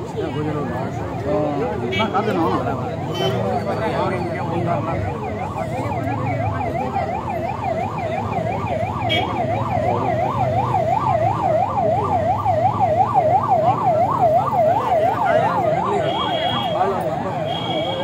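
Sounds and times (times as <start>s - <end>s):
crowd murmur: 0.0s - 18.0s
siren warbling: 2.6s - 18.0s.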